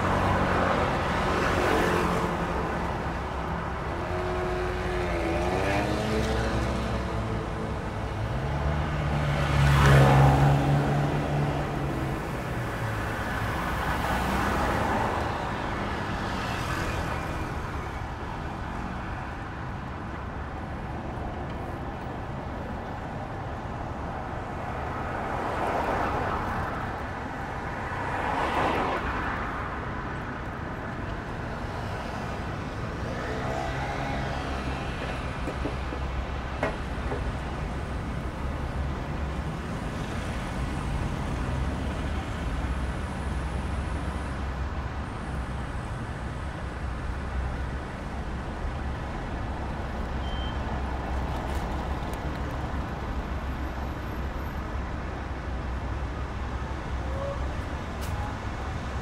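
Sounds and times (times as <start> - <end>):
cars passing close by: 0.0 - 17.8, 23.2 - 59.0
low rumble of traffic: 0.0 - 59.0.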